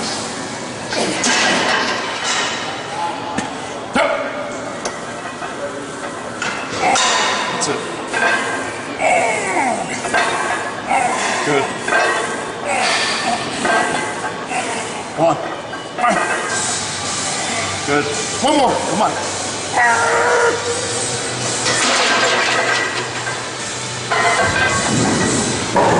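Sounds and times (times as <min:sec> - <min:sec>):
person straining vocally: 0:09.0 - 0:10.0.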